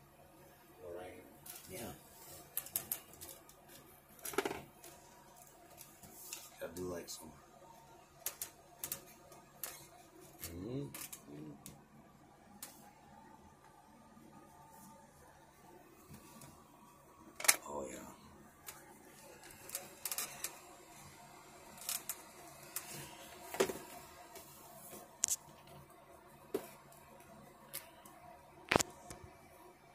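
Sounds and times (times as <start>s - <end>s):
pens clicking and tapping on paper: 8.2s - 9.9s.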